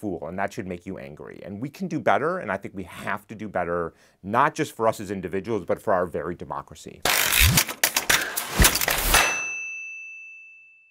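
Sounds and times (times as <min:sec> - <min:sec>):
high bell-like ding: 0:09.1 - 0:10.9.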